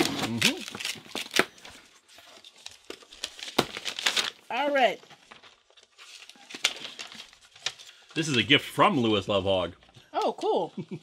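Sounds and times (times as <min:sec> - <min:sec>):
paper rustling and crinkling: 0:00.0 - 0:08.7.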